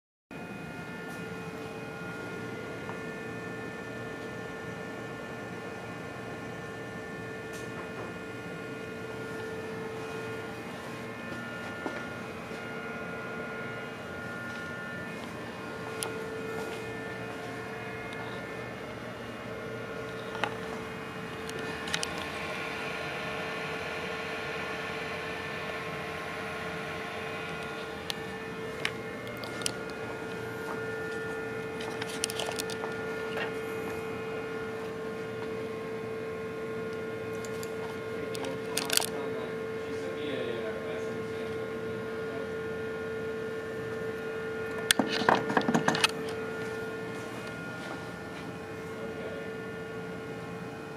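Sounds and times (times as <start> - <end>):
laser console humming: 0.3 - 50.9.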